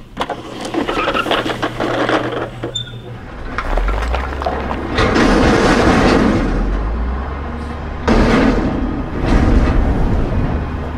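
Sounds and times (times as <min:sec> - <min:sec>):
heavy rumbling hit: 0:03.3 - 0:10.9.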